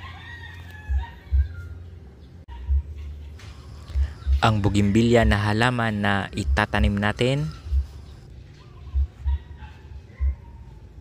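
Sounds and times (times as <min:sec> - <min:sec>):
faint rooster crowing: 0:00.0 - 0:05.8.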